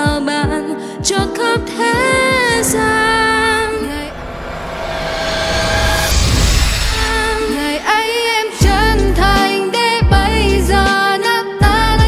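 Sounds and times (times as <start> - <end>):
instrumental backing music: 0.0 - 2.7, 8.3 - 12.0.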